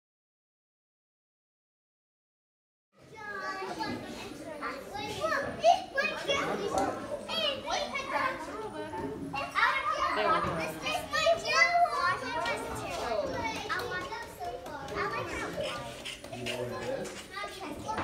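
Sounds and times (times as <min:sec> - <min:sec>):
children chattering and shouting: 0:03.0 - 0:18.0.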